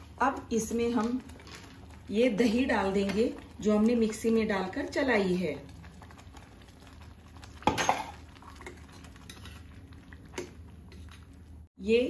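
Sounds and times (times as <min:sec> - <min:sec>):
kitchen hum: 0:00.0 - 0:12.0.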